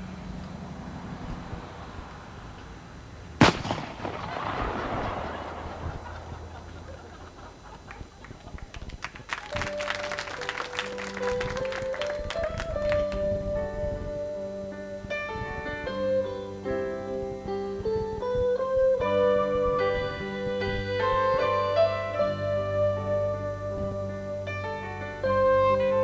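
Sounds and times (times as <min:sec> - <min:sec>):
sharp gunshot: 0:03.4 - 0:06.0
grand piano playing: 0:09.4 - 0:26.0.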